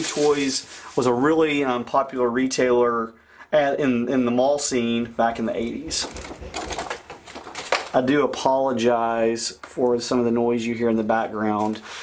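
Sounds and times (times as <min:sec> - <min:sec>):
renovation work noise: 0:05.4 - 0:08.0.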